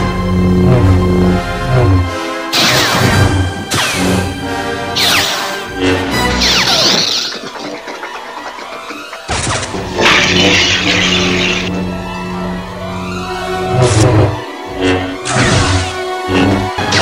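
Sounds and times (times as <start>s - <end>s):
orchestral film score: 0.0s - 17.0s.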